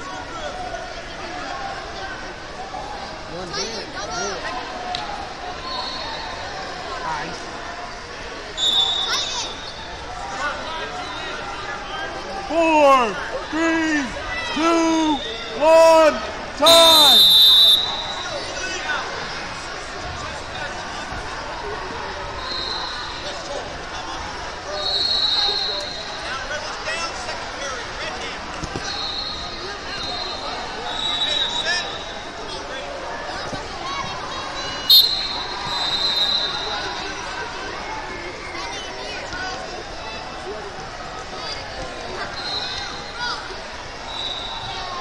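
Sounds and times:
crowd chatter in a big hall: 0.0 - 45.0
high steady whistle: 8.6 - 9.8, 16.6 - 18.5, 22.4 - 23.2, 24.8 - 26.0, 28.8 - 32.2, 34.9 - 36.8, 44.1 - 44.8.

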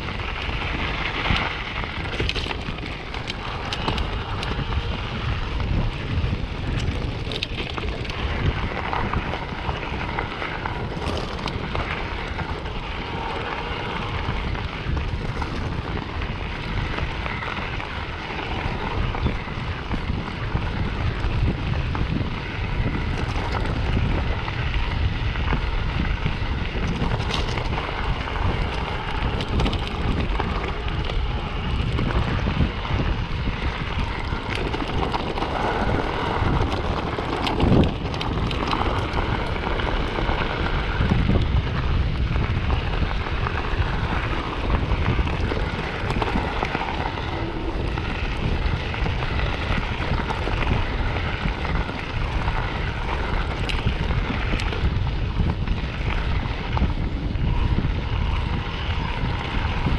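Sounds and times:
bike clicks and knocks: 0.0 - 59.9
bike tyres crunching gravel: 0.0 - 59.9
wind noise on microphone: 0.0 - 59.9.

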